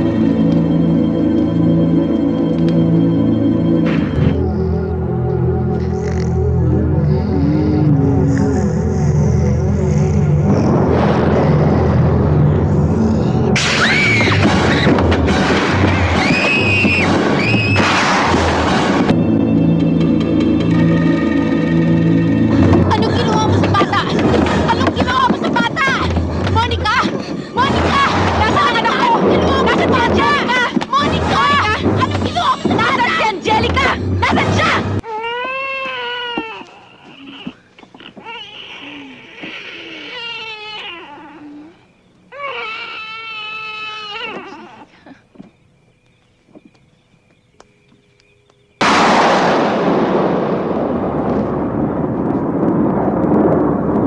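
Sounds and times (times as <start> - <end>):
horror film soundtrack with drone: 0.0 - 38.1
high-pitched shrieks: 5.7 - 18.4
baby crying: 35.0 - 45.2.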